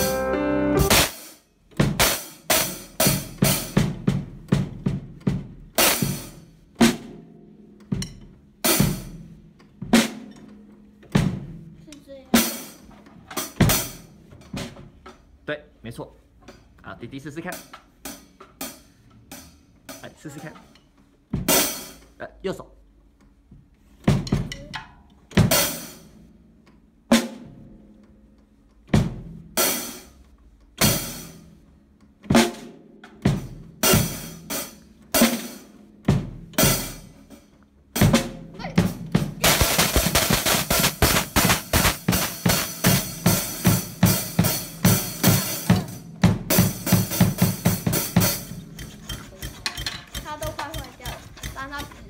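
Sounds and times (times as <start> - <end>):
drum kit strokes: 0.0 - 15.4, 17.4 - 22.2, 23.6 - 26.5, 28.9 - 52.0.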